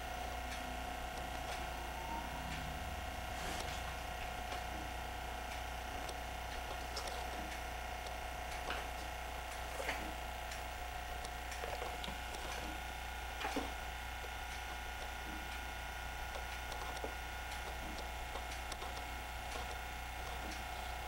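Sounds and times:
steady multi-tone hum: 0.0s - 21.0s.

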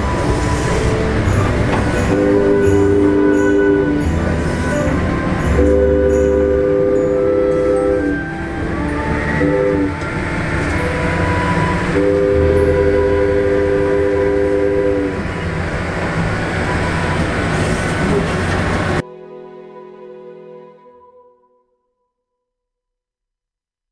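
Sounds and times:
locomotive air horn blasts: 0.0s - 15.8s
train rumble: 0.0s - 19.0s.

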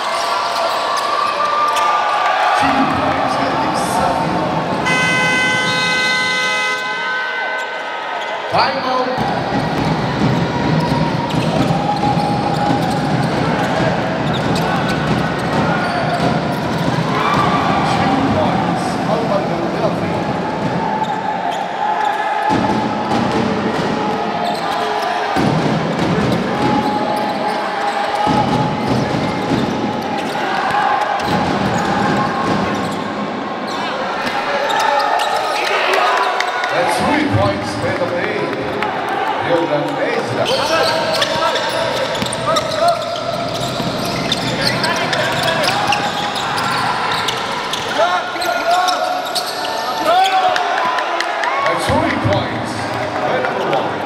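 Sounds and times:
indistinct echoing voices: 0.0s - 54.0s.

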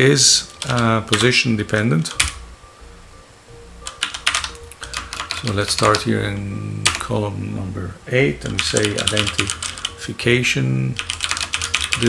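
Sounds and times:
computer keyboard typing: 0.4s - 1.4s, 2.1s - 2.4s, 3.8s - 6.1s, 6.8s - 7.1s, 8.5s - 10.0s, 11.0s - 12.0s.

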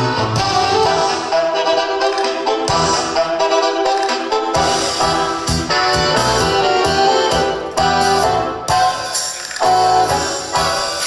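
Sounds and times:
ballroom dance music: 0.0s - 11.0s.

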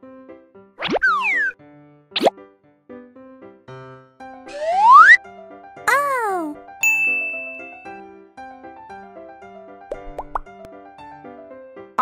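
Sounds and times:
cheerful background music: 0.0s - 12.0s
rising bloop effects: 4.5s - 5.2s
bright chime ding: 6.8s - 8.0s.

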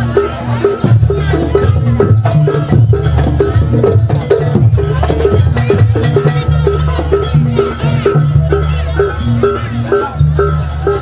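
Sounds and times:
gamelan gong-chime beat: 0.0s - 11.0s.

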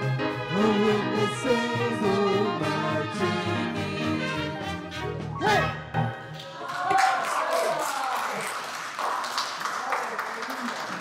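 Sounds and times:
people clapping: 6.3s - 11.0s.

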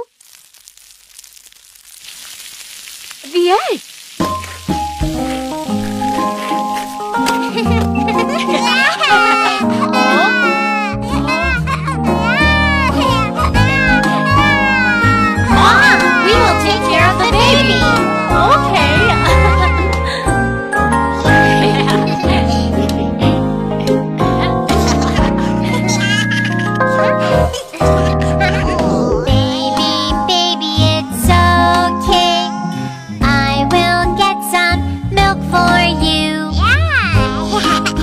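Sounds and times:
egg sizzling in frying pan: 0.0s - 7.6s
backing music: 4.2s - 33.4s.

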